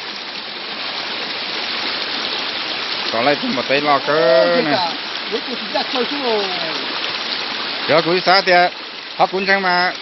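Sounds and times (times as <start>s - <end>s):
running water: 0.0s - 10.0s.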